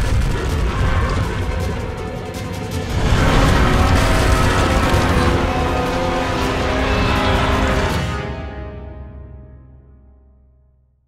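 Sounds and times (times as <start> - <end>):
orchestral chords: 1.8 - 10.2.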